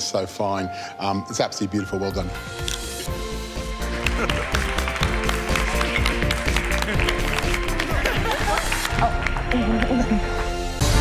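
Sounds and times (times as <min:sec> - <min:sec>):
background music with sustained notes: 0:00.0 - 0:11.0
people clapping: 0:03.6 - 0:10.8.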